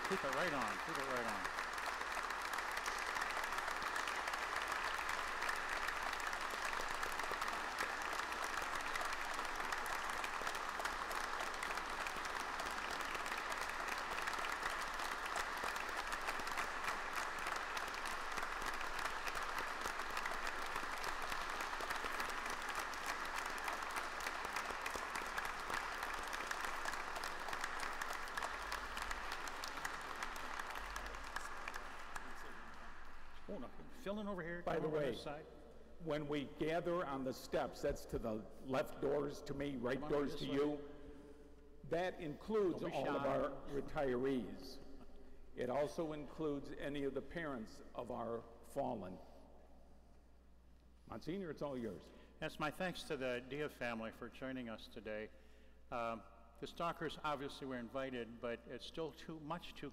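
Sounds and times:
congregation applauding: 0.0 - 35.2, 39.0 - 41.0, 41.9 - 46.8.

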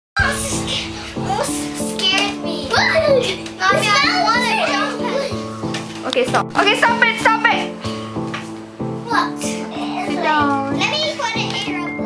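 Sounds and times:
children's excited voices: 0.2 - 5.6
background music with steady beat: 0.2 - 12.0.

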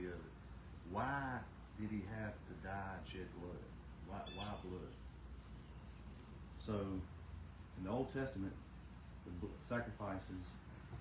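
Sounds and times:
man speaking: 0.0 - 0.3, 0.9 - 5.0, 6.6 - 7.1, 7.8 - 8.6, 9.3 - 10.6
crickets trilling: 0.0 - 11.0.

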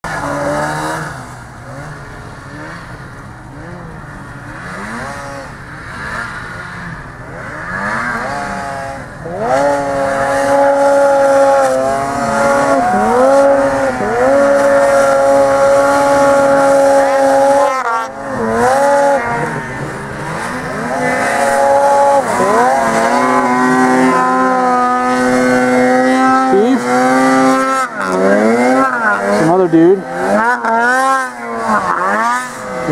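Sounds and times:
snowmobile engine revving: 0.0 - 32.9.

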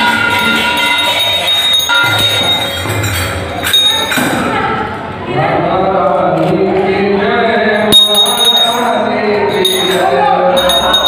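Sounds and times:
bells and hand cymbals jingling: 0.0 - 4.4, 7.8 - 11.0.

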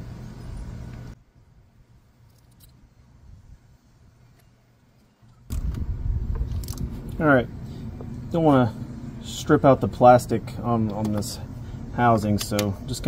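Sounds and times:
small metal clicks: 2.2 - 2.8
low rumble: 5.5 - 9.3.

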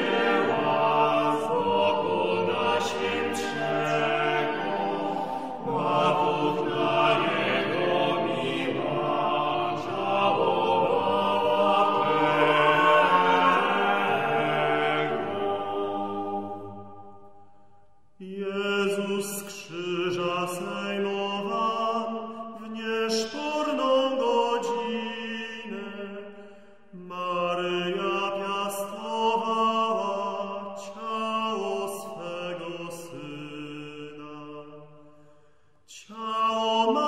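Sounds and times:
vocal ensemble chant-like singing: 0.0 - 17.5, 18.2 - 37.0.

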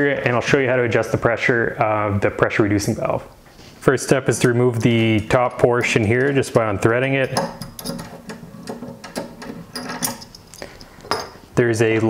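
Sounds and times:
metal valve cap being unscrewed: 7.2 - 11.4.

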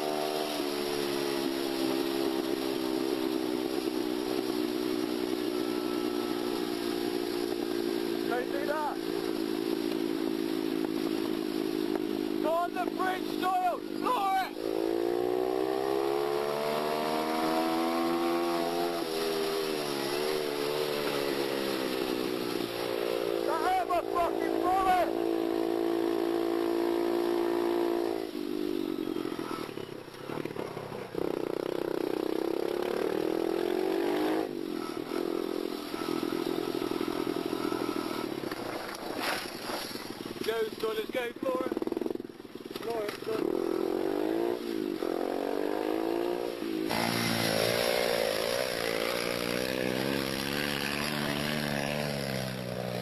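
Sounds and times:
small motorcycle engine running: 0.0 - 53.0.

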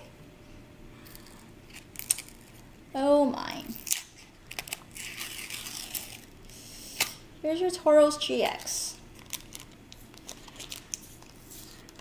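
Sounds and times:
foil trading card crackling: 3.7 - 6.3, 8.4 - 12.0.

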